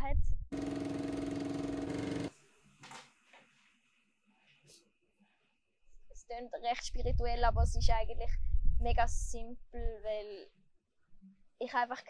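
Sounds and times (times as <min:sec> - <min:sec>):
motor hum: 0:00.5 - 0:02.3
film projector clatter: 0:00.6 - 0:02.3.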